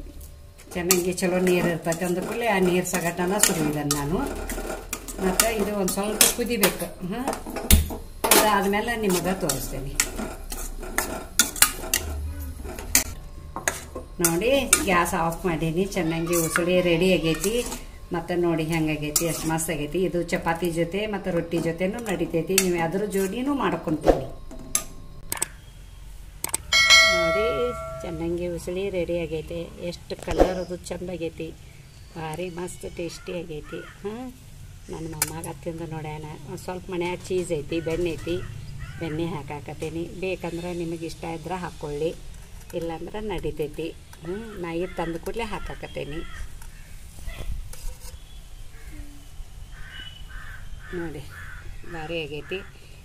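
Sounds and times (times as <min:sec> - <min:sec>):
bell ding: 0:26.7 - 0:28.3
bird calling: 0:33.1 - 0:34.1, 0:37.7 - 0:39.3, 0:44.1 - 0:52.9.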